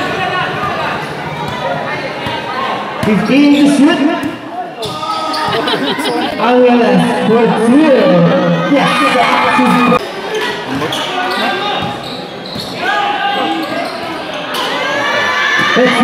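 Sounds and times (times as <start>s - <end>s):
raised voices and crowd noise: 0.0s - 16.0s.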